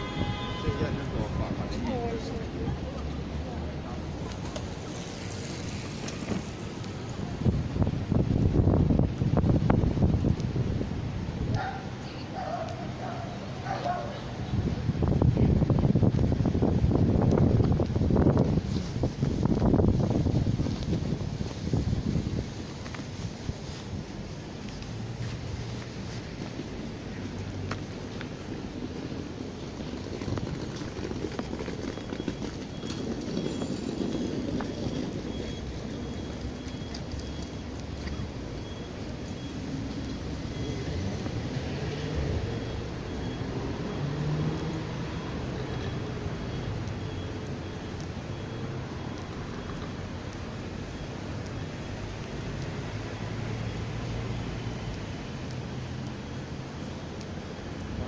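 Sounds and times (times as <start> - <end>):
wind buffeting microphone: 0.0 - 44.1
footsteps on paved path: 0.7 - 58.0.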